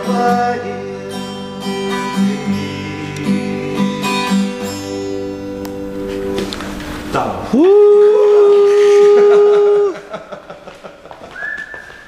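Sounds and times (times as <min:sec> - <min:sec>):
man laughing: 0:07.7 - 0:11.4
high whistled note: 0:11.4 - 0:12.0.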